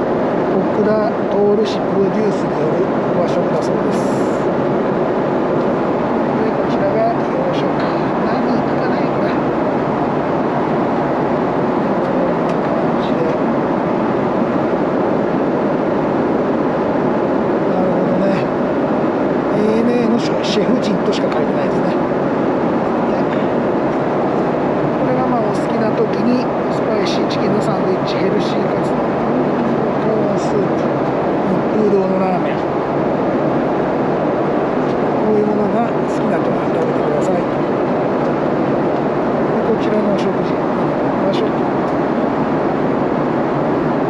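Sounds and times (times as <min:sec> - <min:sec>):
airliner cabin roar: 0:00.0 - 0:44.0.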